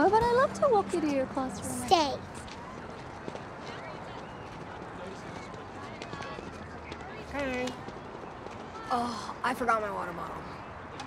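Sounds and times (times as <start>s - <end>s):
steady outdoor hum: 0.0s - 11.0s.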